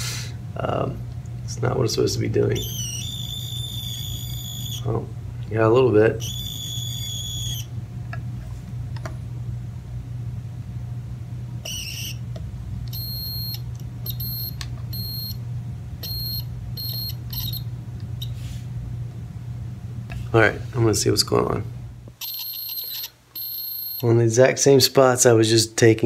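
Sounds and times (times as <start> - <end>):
steady low hum: 0.0 - 26.0
multimeter short broken beeps: 2.6 - 4.8, 6.2 - 7.7, 11.6 - 12.2, 12.9 - 15.4, 16.0 - 18.3, 22.2 - 24.0.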